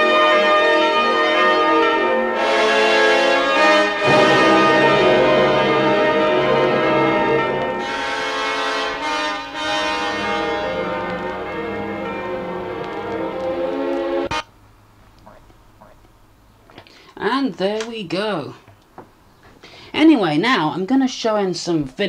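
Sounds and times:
orchestral music with brass: 0.0 - 14.4
faint background noise: 10.1 - 22.0.

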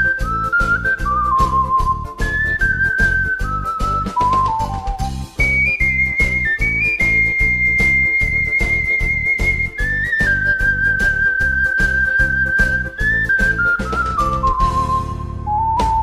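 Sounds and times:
ocarina melody: 0.0 - 16.0.

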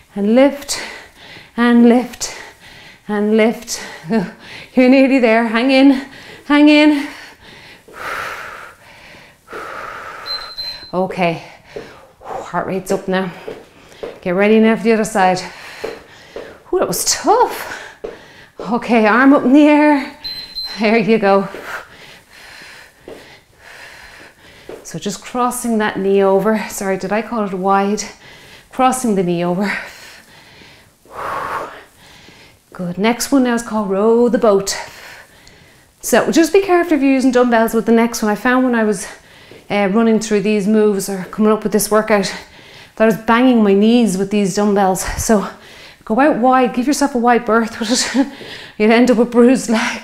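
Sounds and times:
woman breathing hard: 0.8 - 1.6, 2.4 - 3.0, 7.0 - 10.8, 11.4 - 12.5, 13.3 - 14.2, 15.4 - 16.7, 17.6 - 18.6, 21.5 - 24.8, 29.8 - 32.6, 42.5 - 43.0, 48.3 - 48.8.

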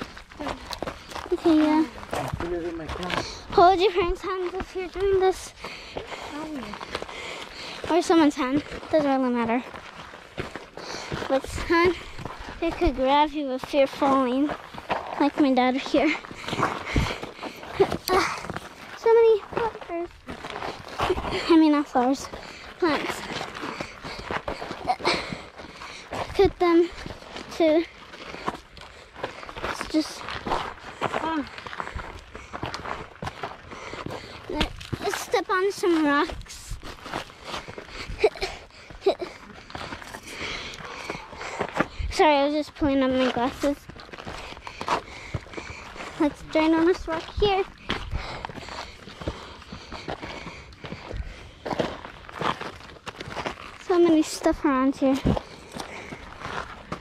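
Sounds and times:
footsteps on gravelly trail: 0.0 - 57.0.

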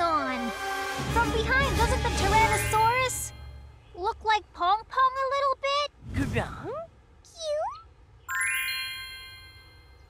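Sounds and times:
bell-like cartoon chime: 8.3 - 10.0.

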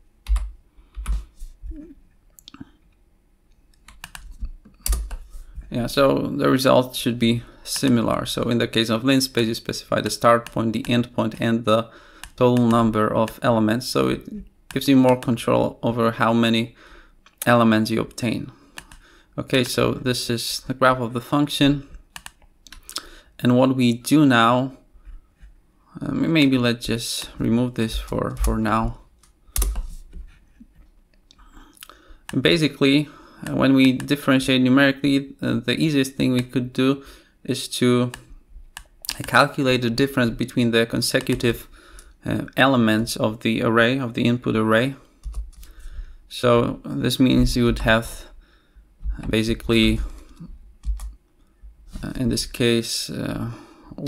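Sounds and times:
computer keyboard keystrokes: 0.2 - 1.2, 3.8 - 5.2, 22.1 - 22.9, 50.8 - 51.2.

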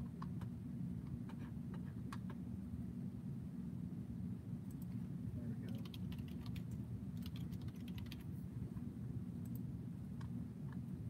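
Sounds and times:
steady low hum: 0.0 - 11.0
computer keyboard typing: 5.7 - 8.3.

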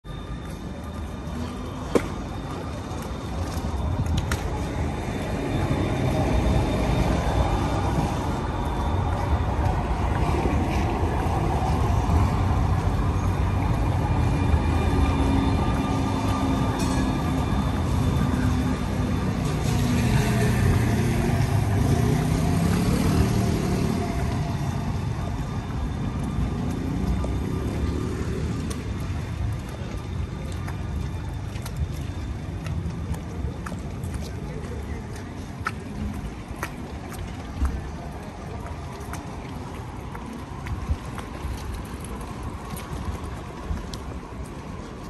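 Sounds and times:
traffic noise: 0.0 - 45.0
tram passing on wet street: 0.1 - 45.0.

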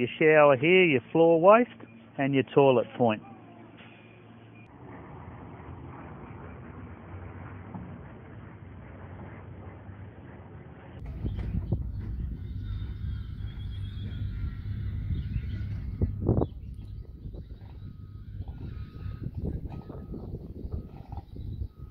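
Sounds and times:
low rumble with bumps: 4.4 - 21.9
loud thump: 11.0 - 12.3.

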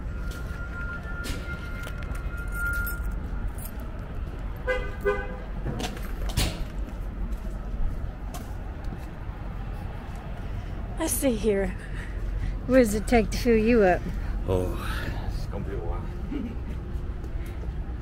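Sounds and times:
vehicle engines rumbling: 0.0 - 18.0
horn toot: 4.6 - 5.5.

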